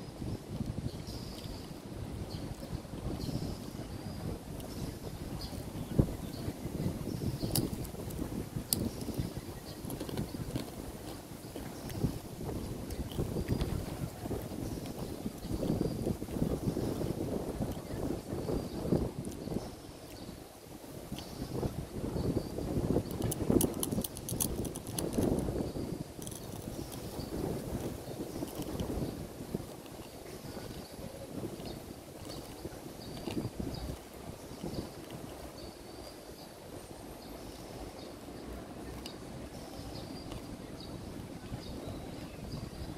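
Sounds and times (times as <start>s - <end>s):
wind buffeting microphone: 0.0s - 42.9s.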